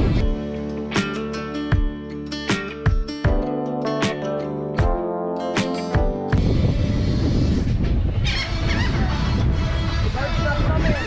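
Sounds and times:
wind rumble on microphone: 0.0s - 0.3s, 6.4s - 11.0s
strummed acoustic guitar: 0.0s - 6.4s
gull cries: 8.2s - 11.0s.

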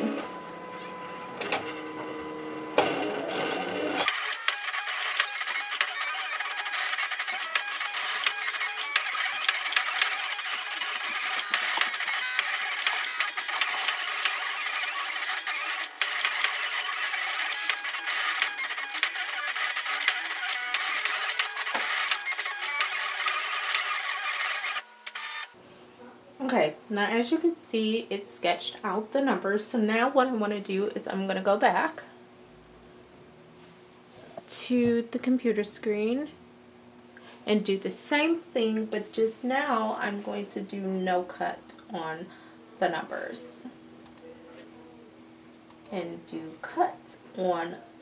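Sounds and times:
cutting machine whirring and clicking: 0.0s - 25.6s.

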